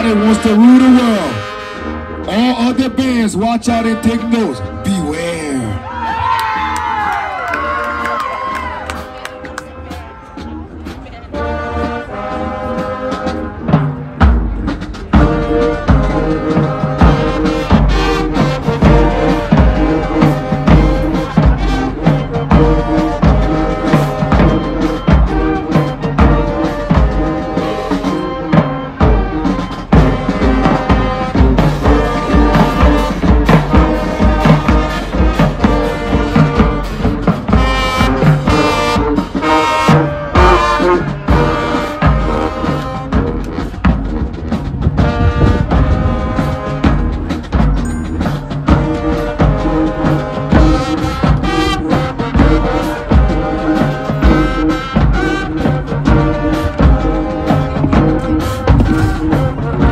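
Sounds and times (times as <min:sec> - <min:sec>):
brass band tune: 0:00.0 - 0:59.9
marching drum beat: 0:08.9 - 0:59.9.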